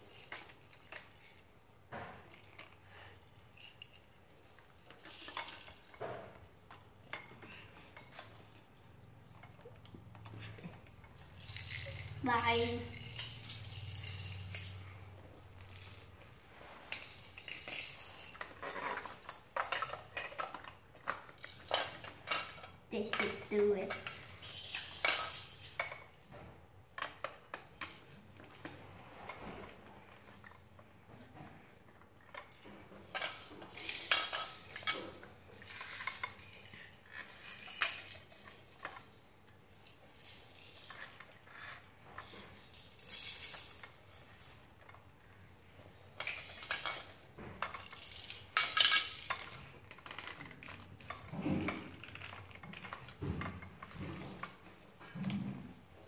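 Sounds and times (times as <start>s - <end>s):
plastic toy pieces clicking: 17.0s - 26.1s, 46.2s - 53.2s.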